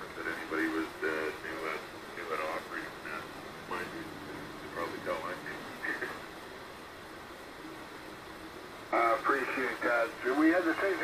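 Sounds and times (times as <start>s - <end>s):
radio hiss: 0.0s - 11.0s
man's voice over radio: 0.2s - 6.3s, 8.9s - 11.0s.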